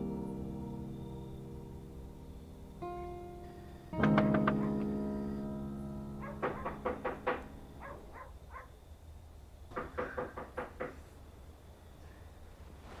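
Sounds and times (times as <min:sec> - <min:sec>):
knuckles knocking on wooden door: 0:06.3 - 0:07.5, 0:09.8 - 0:11.0.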